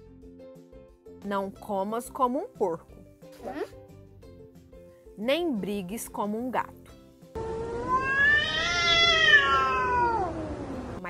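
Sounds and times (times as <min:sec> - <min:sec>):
cat meowing: 0:07.8 - 0:10.5.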